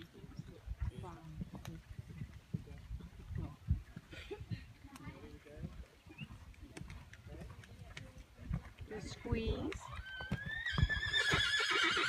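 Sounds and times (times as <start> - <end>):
horse hoofbeats on sand: 0.0 - 11.5.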